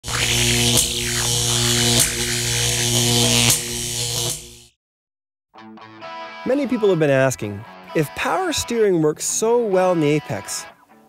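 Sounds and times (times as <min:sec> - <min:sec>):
electric buzzing hum with crackle: 0:00.0 - 0:04.7
sharp electric zaps: 0:00.0 - 0:04.7.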